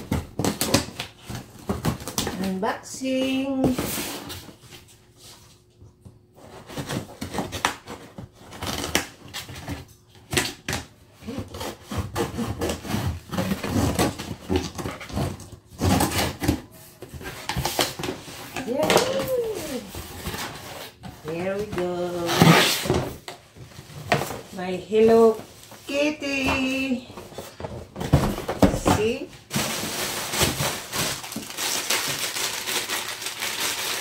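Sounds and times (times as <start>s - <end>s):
scissors cutting packing tape: 8.5s - 9.5s.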